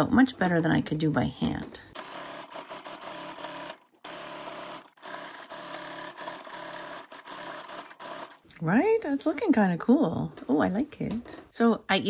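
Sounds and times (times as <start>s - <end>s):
sewing machine stitching: 2.0s - 8.5s.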